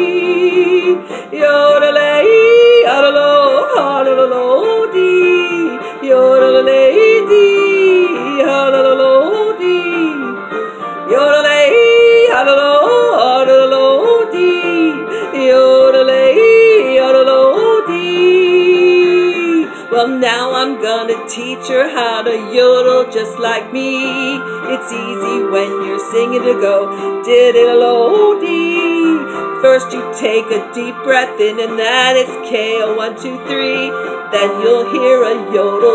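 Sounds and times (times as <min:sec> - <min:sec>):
woman yodeling: 0:11.1 - 0:31.5.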